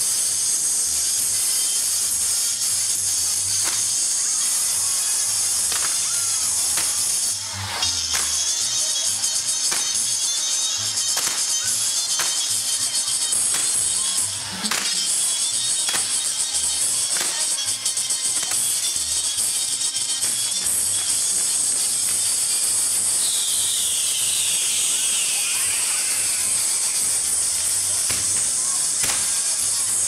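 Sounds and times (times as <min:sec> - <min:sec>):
fireworks hissing and crackling: 0:00.0 - 0:30.0
sharp firework bangs: 0:11.2 - 0:11.6, 0:28.1 - 0:29.5.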